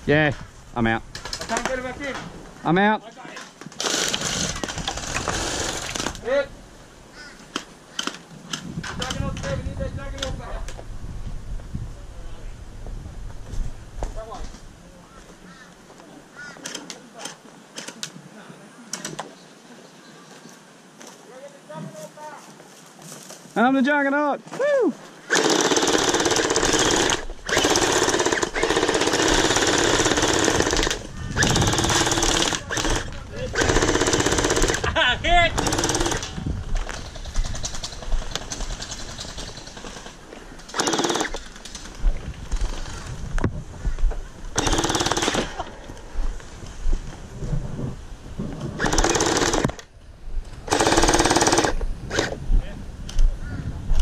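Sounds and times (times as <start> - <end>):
toy blaster firing full auto: 25.3 - 34.8, 40.7 - 41.4, 48.8 - 49.8, 50.7 - 52.3.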